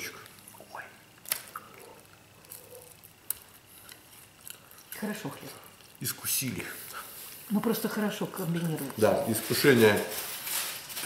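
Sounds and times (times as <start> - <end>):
handling food at a table: 8.7 - 11.0.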